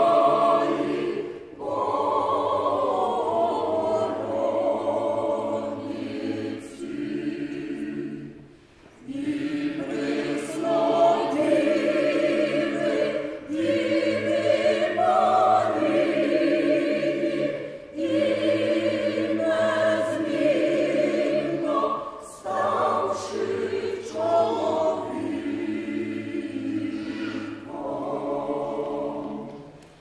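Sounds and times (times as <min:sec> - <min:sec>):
mixed choir singing: 0:00.0 - 0:30.0.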